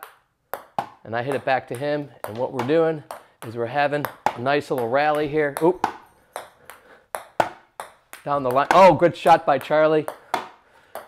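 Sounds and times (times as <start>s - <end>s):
ping-pong ball taps: 0.0s - 11.0s.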